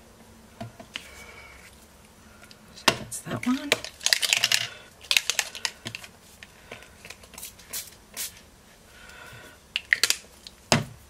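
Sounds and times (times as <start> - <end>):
spray bottle spritzing: 7.2 - 8.4.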